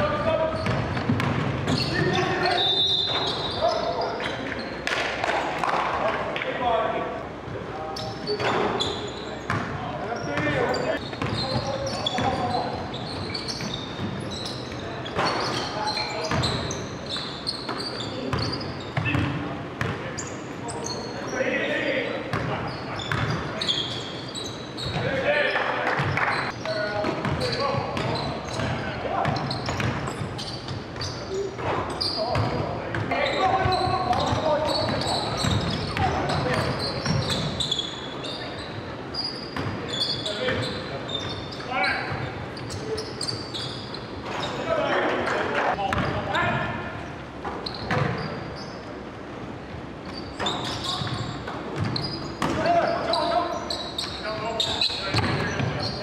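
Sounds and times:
basketball bouncing on hardwood floor: 0.6s - 1.7s.

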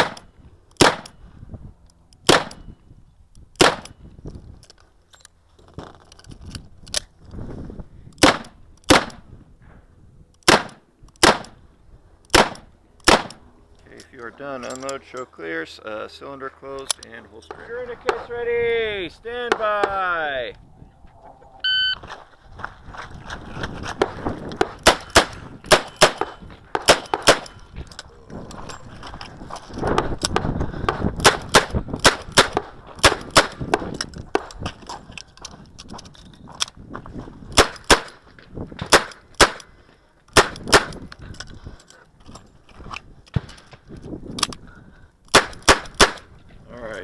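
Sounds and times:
wind buffeting microphone: 0.0s - 4.7s, 6.2s - 10.4s, 17.5s - 47.0s.

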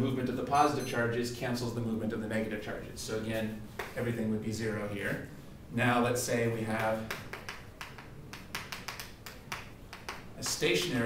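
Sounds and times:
chalk tapping on chalkboard: 3.8s - 4.0s, 6.7s - 11.0s.

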